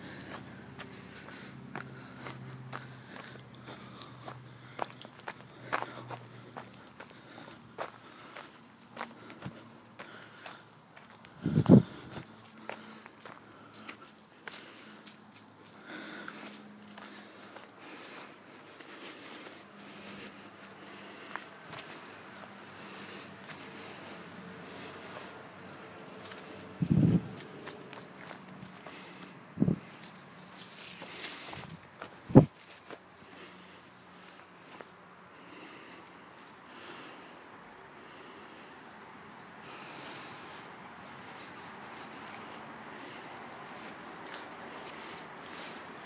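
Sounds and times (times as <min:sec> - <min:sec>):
faint footsteps on trail: 0:00.0 - 0:46.0
high-pitched insect song: 0:00.0 - 0:46.0.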